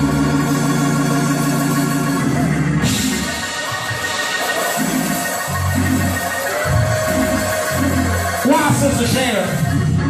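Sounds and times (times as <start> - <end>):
electric organ chord: 0.0 - 10.0.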